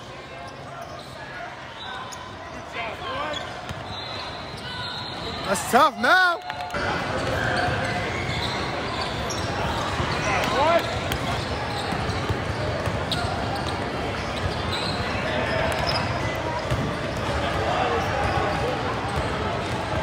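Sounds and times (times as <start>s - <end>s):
players calling: 0.5s - 12.6s.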